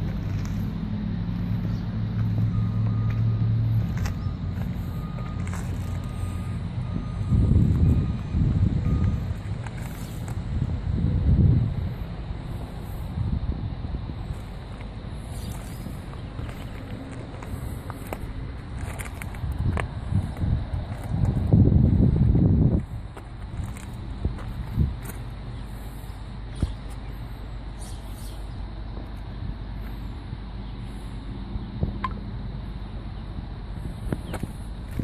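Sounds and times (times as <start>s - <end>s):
wind buffeting microphone: 0.0s - 28.0s, 33.3s - 35.0s
diesel engine idling: 0.0s - 35.0s.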